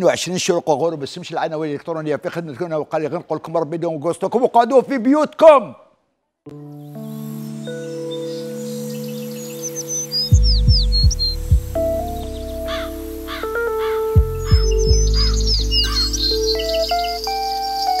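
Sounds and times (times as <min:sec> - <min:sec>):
held synth chords: 0:06.5 - 0:18.0
deep falling bass sweeps: 0:10.4 - 0:16.6
quick bird-like chirps: 0:13.8 - 0:18.0.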